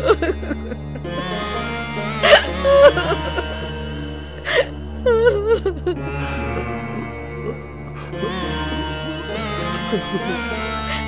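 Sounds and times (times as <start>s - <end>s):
background music drone: 0.0s - 11.0s
woman sobbing and wailing: 0.0s - 11.0s.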